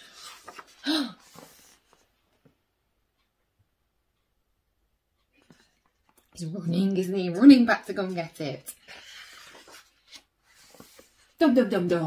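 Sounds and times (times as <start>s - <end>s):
page rustle: 0.1s - 2.0s, 8.8s - 11.3s.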